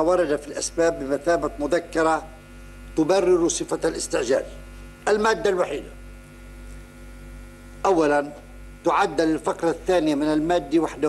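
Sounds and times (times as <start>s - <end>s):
man talking: 0.0s - 2.3s, 3.0s - 6.0s, 7.8s - 11.0s
electrical mains hum: 0.0s - 11.0s.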